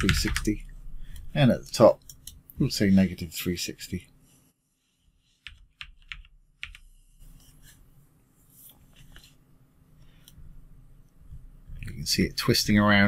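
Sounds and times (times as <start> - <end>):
keyboard and mouse clicks: 5.4 - 6.9.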